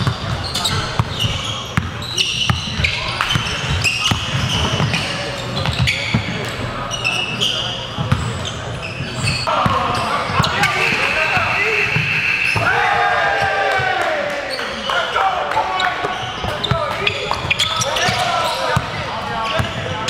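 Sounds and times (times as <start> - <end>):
players shouting and whooping: 12.5 - 16.1.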